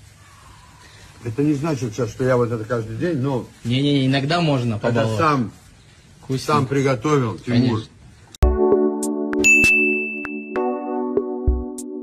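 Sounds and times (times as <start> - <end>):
sustained music chord: 8.4 - 12.0
sharp percussive hits: 9.3 - 10.8
high bell-like tone: 9.4 - 10.9.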